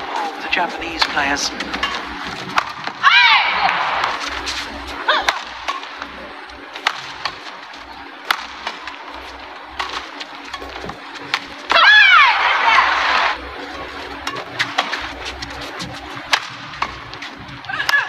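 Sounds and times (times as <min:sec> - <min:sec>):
crowd hubbub: 0:00.0 - 0:18.0
racket hitting shuttlecock: 0:01.0 - 0:06.1, 0:06.8 - 0:07.5, 0:08.2 - 0:09.0, 0:09.7 - 0:13.4, 0:14.2 - 0:18.0.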